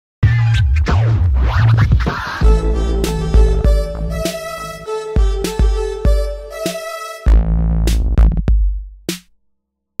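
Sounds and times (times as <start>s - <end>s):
record scratching: 0.8s - 3.3s
low bass tone: 2.4s - 6.6s.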